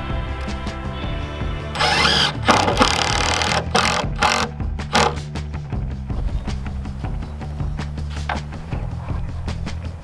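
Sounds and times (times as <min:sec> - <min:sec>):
background music: 0:00.0 - 0:10.0
cordless drill into wood: 0:01.8 - 0:05.2.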